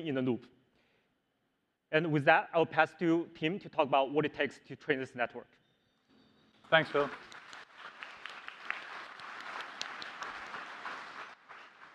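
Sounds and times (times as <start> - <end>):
audience applauding: 6.6 - 11.9.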